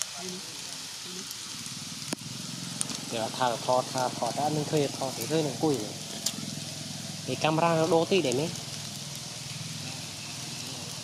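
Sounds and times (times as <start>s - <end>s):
background hiss: 0.0s - 11.0s.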